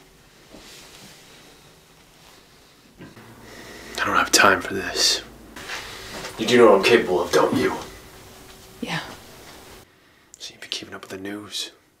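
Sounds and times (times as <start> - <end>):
faint room hiss: 0.0 - 12.0
man speaking softly: 10.4 - 11.8.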